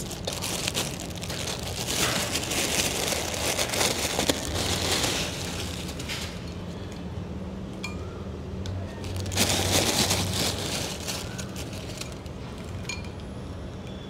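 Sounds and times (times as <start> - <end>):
fried noodles crackling: 0.0 - 6.4, 9.0 - 12.4
plastic bag crinkling: 0.0 - 6.5, 9.0 - 12.8
light clinks on glass bowl: 12.8 - 13.2.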